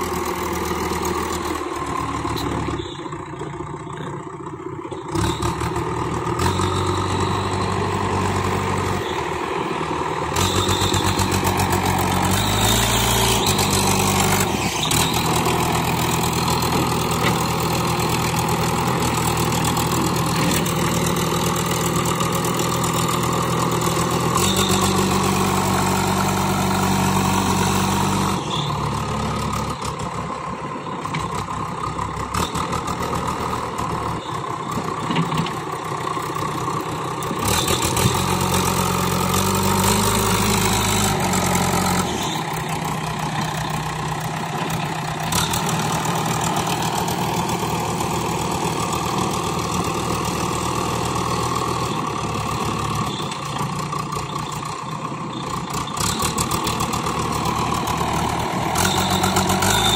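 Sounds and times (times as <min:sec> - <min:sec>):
diesel engine running: 0:00.0 - 0:59.9
loader bucket pushing soil: 0:04.9 - 0:30.3, 0:55.2 - 0:59.9.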